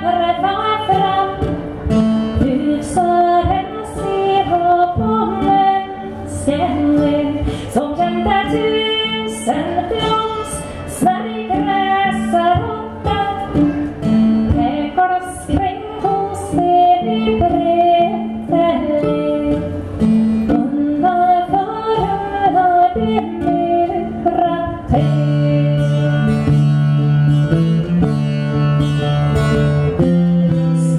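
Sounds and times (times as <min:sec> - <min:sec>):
woman singing: 0:00.0 - 0:26.8
plucked string accompaniment: 0:00.0 - 0:30.9.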